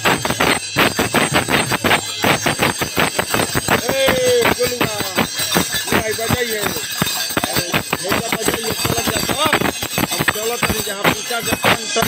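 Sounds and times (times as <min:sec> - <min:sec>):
crowd: 0:00.0 - 0:12.0
live percussion music: 0:00.0 - 0:12.0.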